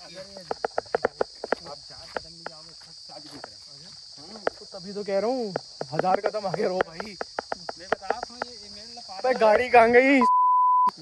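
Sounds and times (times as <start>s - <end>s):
high-pitched insect chorus: 0.0s - 10.2s.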